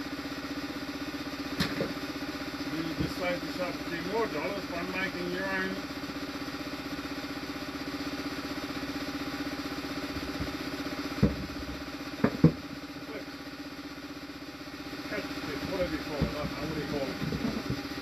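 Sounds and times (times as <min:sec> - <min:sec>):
low mechanical hum: 0:00.0 - 0:18.0
wooden box knocking on workbench: 0:11.2 - 0:11.5, 0:12.2 - 0:12.6.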